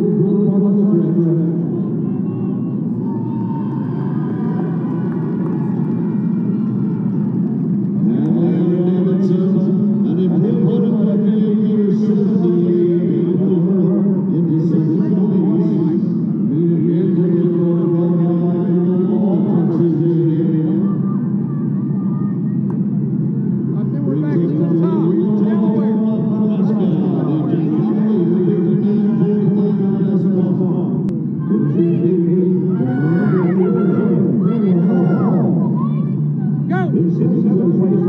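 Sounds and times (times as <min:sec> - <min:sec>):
murmur of voices: 0:00.0 - 0:38.0
stadium ambience: 0:00.0 - 0:38.0.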